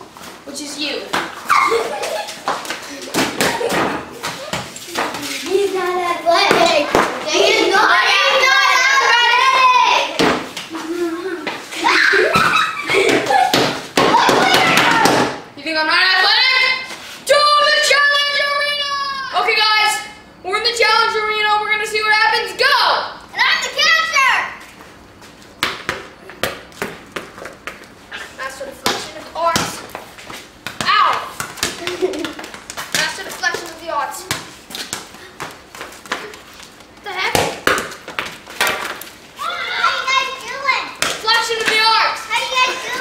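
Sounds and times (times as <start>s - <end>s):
children calling out and shrieking: 1.4s - 2.1s, 6.2s - 10.2s, 10.8s - 15.3s, 16.2s - 20.0s, 22.6s - 24.6s, 30.8s - 31.4s, 39.4s - 43.0s.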